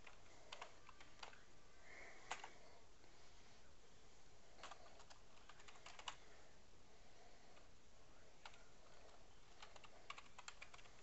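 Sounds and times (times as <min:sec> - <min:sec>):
typing on a keyboard: 0:00.0 - 0:01.4, 0:02.3 - 0:02.5, 0:04.6 - 0:06.2, 0:08.4 - 0:08.7, 0:09.5 - 0:11.0.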